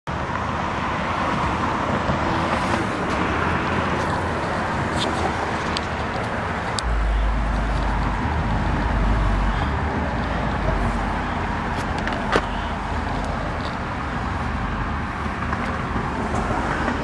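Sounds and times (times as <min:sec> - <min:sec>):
microphone handling rumble and hiss: 0:06.7 - 0:15.0
deep rumble: 0:06.8 - 0:15.0.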